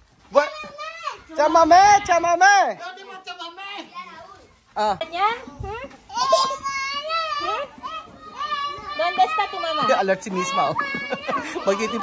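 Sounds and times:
children calling: 0:00.2 - 0:04.7, 0:05.4 - 0:12.0.

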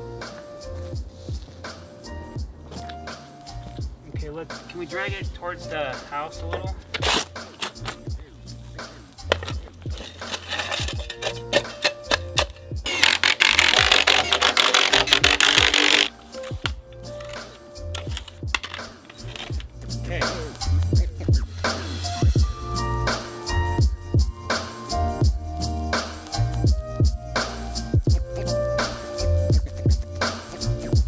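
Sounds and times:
music with bass beat: 0:00.0 - 0:31.0.

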